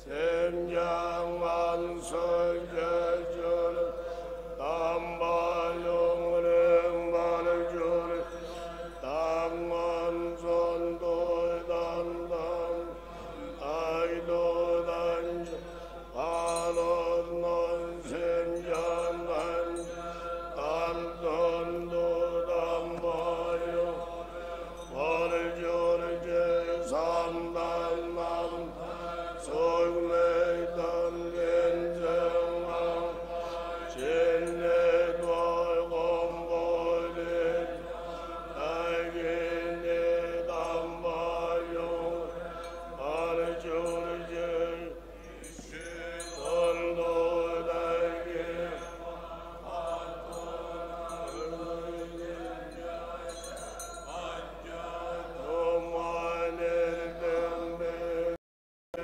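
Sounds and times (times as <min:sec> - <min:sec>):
monks chanting: 0:00.0 - 0:58.4.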